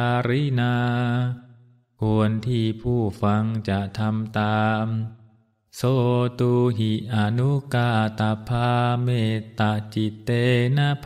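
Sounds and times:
man chanting: 0.0 - 11.0.

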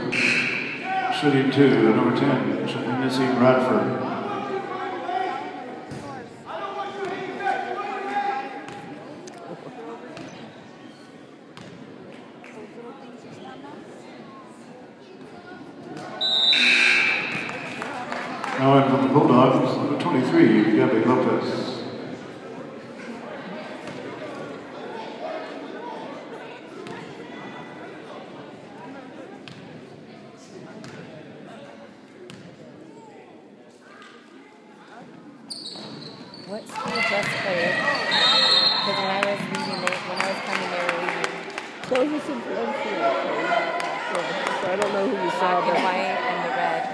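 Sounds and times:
murmur of spectators: 0.0 - 46.9
voices in a gym: 0.0 - 46.9.

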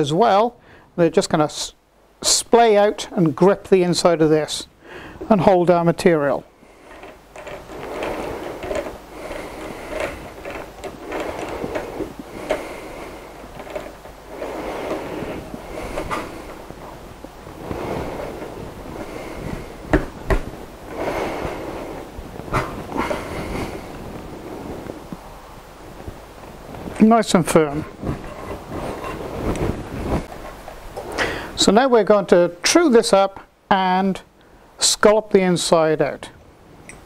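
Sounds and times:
chuck key grinding and rattling: 6.9 - 12.6.

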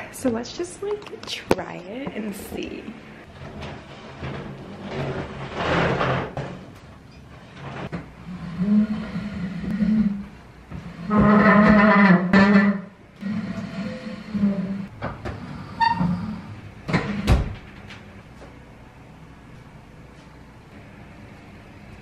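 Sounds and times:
dresser scraping across wooden floor: 3.4 - 6.6.

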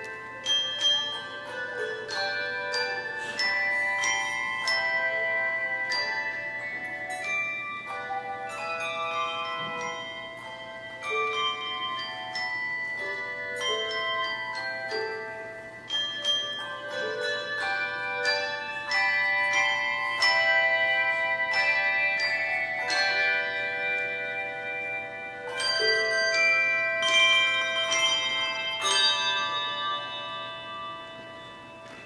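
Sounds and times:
handbell choir playing chords: 0.0 - 32.0.

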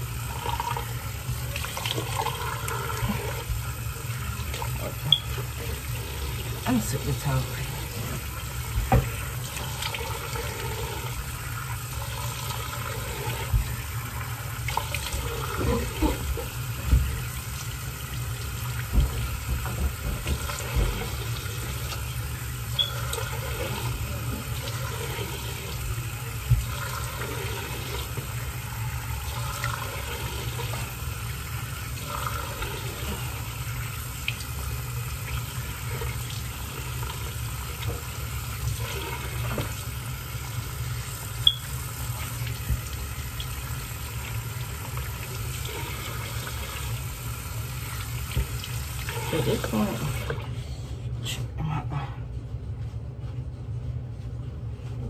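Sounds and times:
tap running into sink: 8.0 - 10.0, 14.7 - 17.7, 18.6 - 24.8, 41.4 - 43.6, 47.9 - 50.4.

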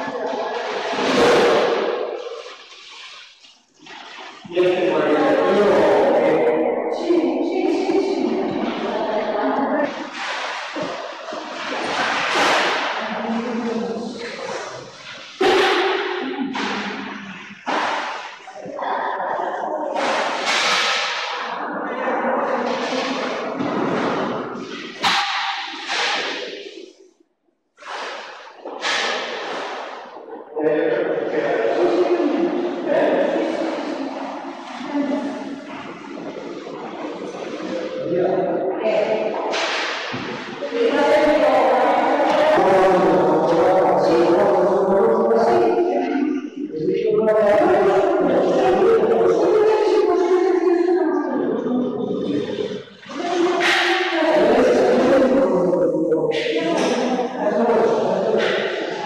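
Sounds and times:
indistinct voices talking: 4.5 - 10.2, 30.2 - 59.0.

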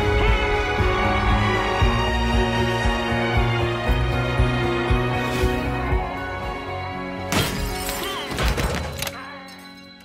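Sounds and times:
film score music: 0.0 - 10.0.

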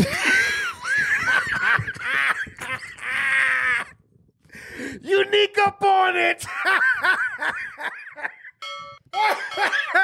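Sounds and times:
hearty laughter: 0.0 - 4.0, 6.5 - 8.6
person talking: 5.0 - 6.6.

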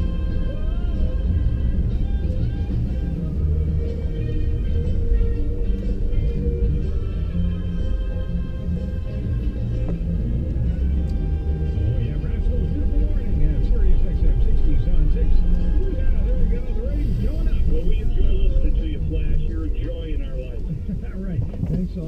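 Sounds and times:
song on car radio: 0.0 - 22.0
vehicle rumble on road: 0.0 - 22.0
voice over radio: 11.8 - 22.0.

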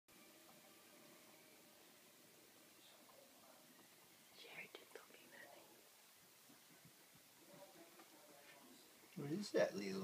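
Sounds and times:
faint whisper: 2.8 - 8.9.

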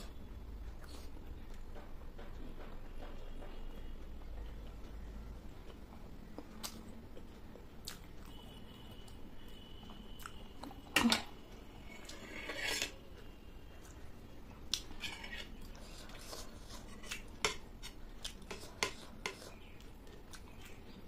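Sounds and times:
chewing: 14.6 - 21.0.

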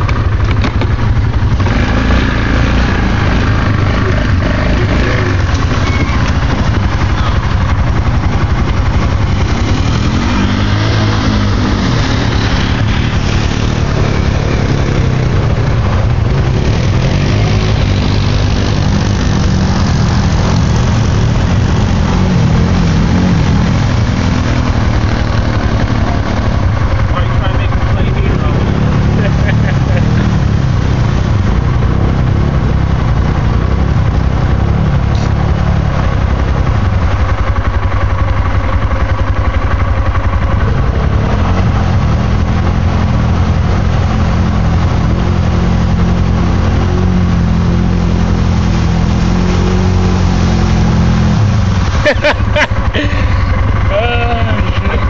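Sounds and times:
atv engine revving: 0.0 - 55.0
vehicle churning through mud: 0.0 - 55.0.

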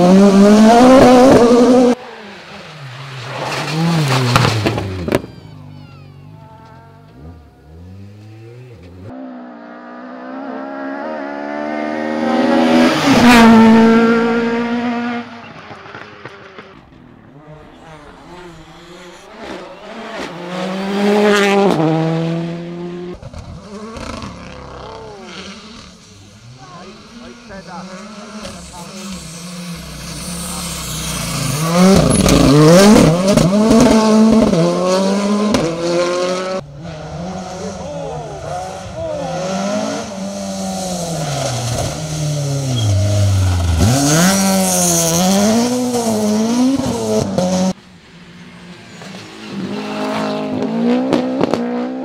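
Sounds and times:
rally car engines revving past: 0.0 - 52.0.

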